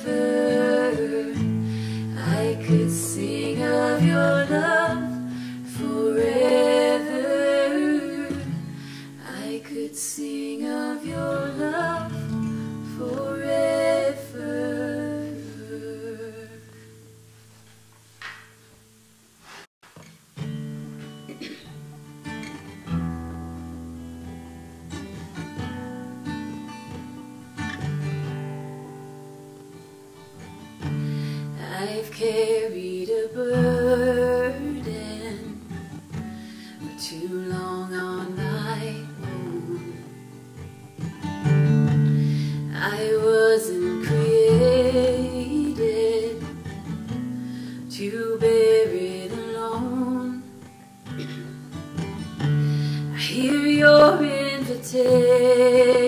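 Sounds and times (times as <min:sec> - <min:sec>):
women singing in harmony: 0:00.0 - 0:16.8, 0:31.6 - 0:35.8, 0:36.9 - 0:40.2, 0:42.4 - 0:46.7, 0:47.8 - 0:50.5, 0:53.1 - 0:56.0
acoustic guitar: 0:00.0 - 0:56.0.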